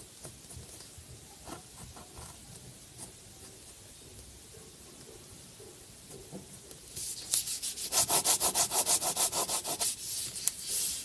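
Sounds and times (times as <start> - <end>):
pen scratching on paper: 7.0 - 11.0.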